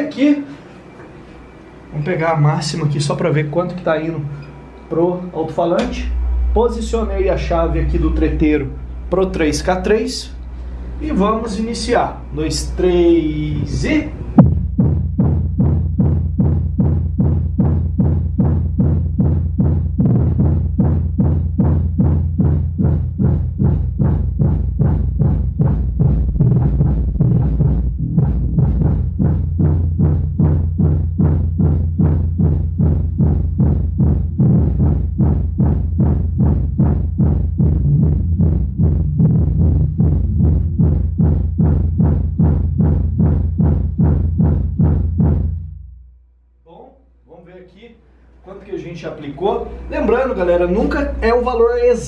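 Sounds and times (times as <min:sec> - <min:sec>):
bass-heavy music with steady beat: 0:05.8 - 0:46.0.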